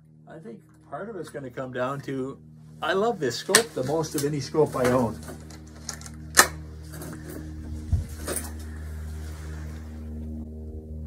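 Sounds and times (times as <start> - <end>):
steady low hum: 0.0 - 11.0
rifle handling knocks and clicks: 4.8 - 7.4.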